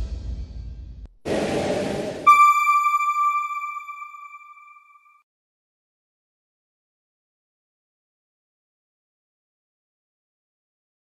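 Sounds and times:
bright electronic ping: 2.3s - 5.1s.

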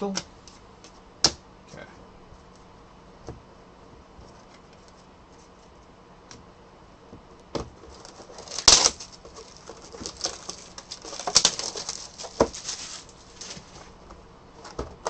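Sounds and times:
taps and knocks on cardboard: 7.1s - 7.8s, 12.3s - 12.6s
cardboard rustling and scraping: 7.6s - 15.0s.

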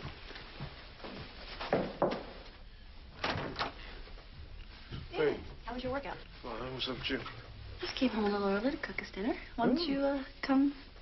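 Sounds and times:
door shutting with a thud: 3.2s - 3.8s.

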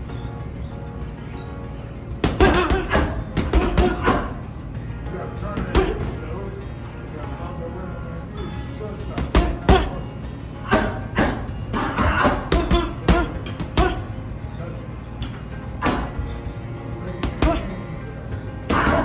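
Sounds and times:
gloves hitting punching bag: 2.2s - 4.4s, 10.7s - 14.0s.

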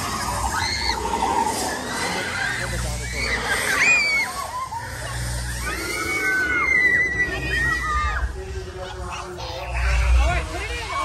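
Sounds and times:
dinosaur shrieks: 0.0s - 8.3s
low rumble: 4.5s - 11.0s.

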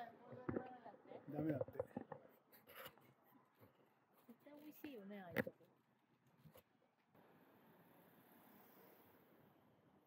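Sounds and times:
faint rustle or scrape: 2.2s - 5.0s.

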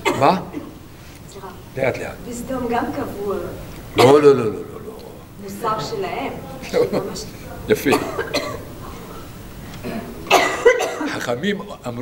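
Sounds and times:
person coughing: 0.0s - 0.8s, 4.0s - 4.2s, 7.9s - 8.7s, 9.8s - 11.3s.

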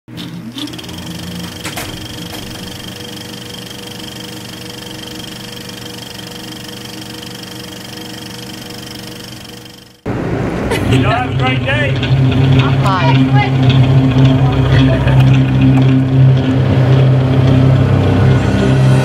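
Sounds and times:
electronic tones drone: 0.3s - 10.1s, 10.9s - 19.0s.

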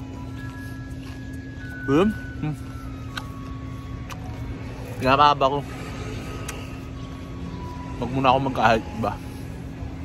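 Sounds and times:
low hum of motor traffic: 0.0s - 10.0s.

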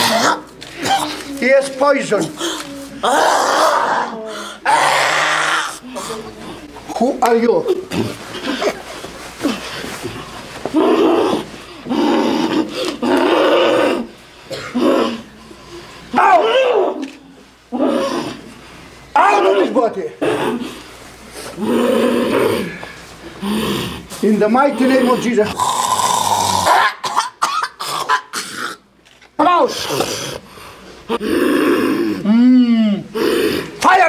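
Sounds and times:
woman coughing hard: 0.0s - 1.2s, 14.5s - 15.1s, 26.7s - 28.8s.

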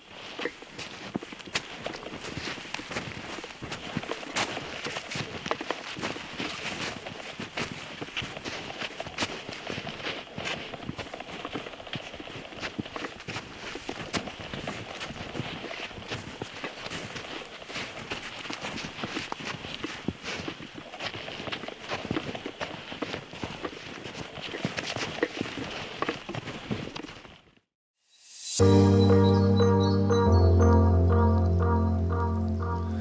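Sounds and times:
boots crunching through snow: 0.0s - 27.4s.

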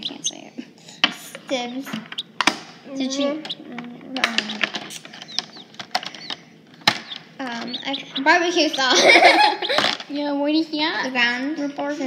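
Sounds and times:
plastic toys clicking and tapping: 1.0s - 2.7s, 3.4s - 10.1s.

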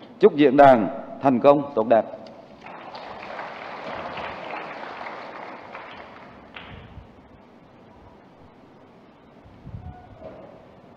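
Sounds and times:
audience applauding: 2.6s - 6.7s.

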